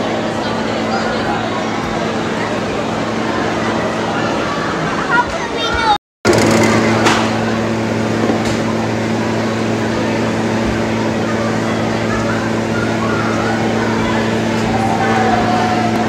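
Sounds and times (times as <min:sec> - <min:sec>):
low droning machine hum: 0:06.3 - 0:16.0.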